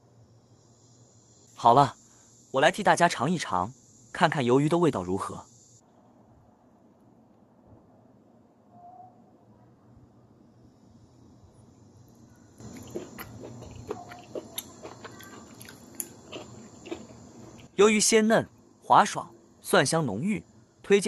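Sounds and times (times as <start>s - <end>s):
crunchy clicks: 12.6s - 17.7s
person chewing: 12.6s - 17.7s.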